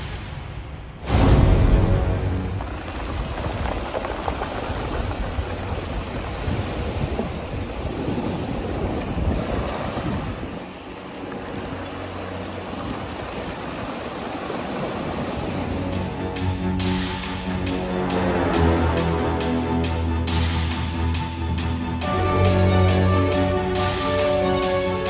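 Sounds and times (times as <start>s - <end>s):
waves washing over pebble shore: 2.3s - 16.4s.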